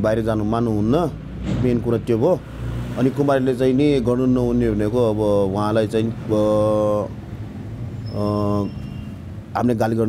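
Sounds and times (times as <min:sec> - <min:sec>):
man speaking: 0:03.0 - 0:07.1, 0:08.1 - 0:08.8, 0:09.6 - 0:10.0.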